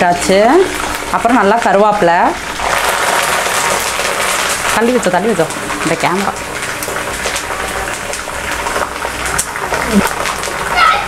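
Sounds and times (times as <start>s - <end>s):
leaves sizzling in hot oil: 0.0s - 11.0s.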